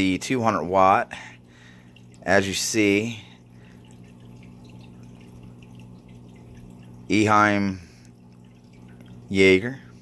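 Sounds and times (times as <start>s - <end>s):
steady low hum: 0.0s - 10.0s
water dripping and trickling: 0.0s - 10.0s.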